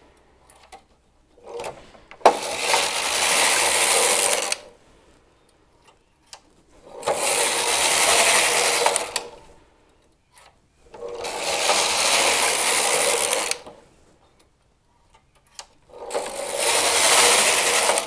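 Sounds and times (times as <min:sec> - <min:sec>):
knitting machine carriage sliding: 0:00.0 - 0:04.8, 0:06.3 - 0:09.6, 0:10.4 - 0:14.1, 0:15.4 - 0:18.0.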